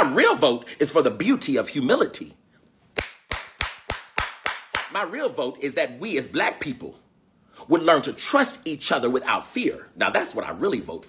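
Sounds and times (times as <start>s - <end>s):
man clapping hands: 3.0s - 5.0s.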